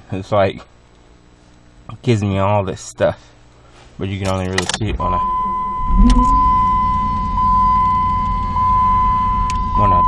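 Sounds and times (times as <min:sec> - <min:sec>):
low rumble in car cabin: 0:04.0 - 0:10.0
tiny electronic blip: 0:05.0 - 0:07.0
high-pitched electronic tone: 0:05.0 - 0:08.8.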